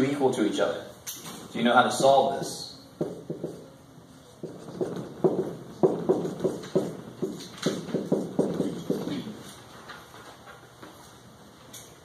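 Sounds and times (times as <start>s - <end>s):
marker tapping and scraping on whiteboard: 3.0s - 3.8s, 4.4s - 9.6s.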